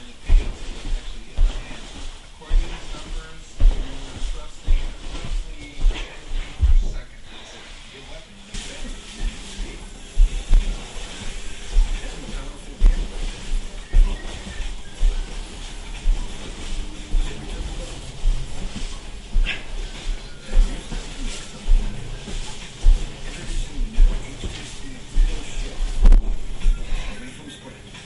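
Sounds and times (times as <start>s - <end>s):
television music and talk: 0.0s - 28.0s
body thumping on carpeted floor: 0.2s - 7.4s, 8.6s - 27.2s.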